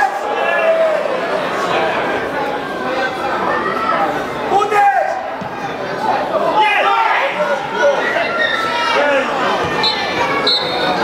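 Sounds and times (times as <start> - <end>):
people shouting: 6.5 - 11.0
whistle blasts: 9.8 - 11.0.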